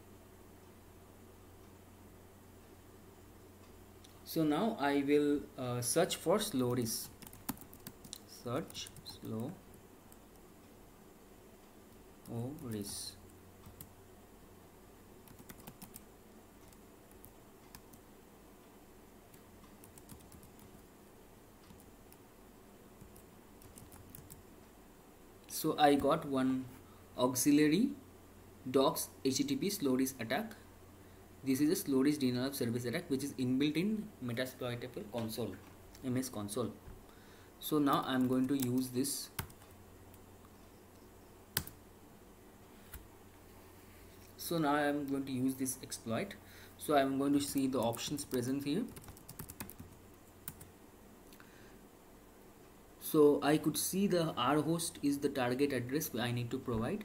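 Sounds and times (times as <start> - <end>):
computer keyboard keystrokes: 15.2 - 16.1, 19.3 - 20.8, 23.0 - 24.4, 41.6 - 41.8, 47.5 - 50.7.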